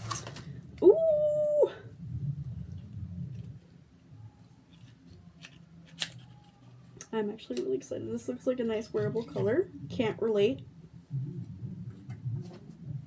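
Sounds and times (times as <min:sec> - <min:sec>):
woman saying ooh: 0:00.8 - 0:02.0.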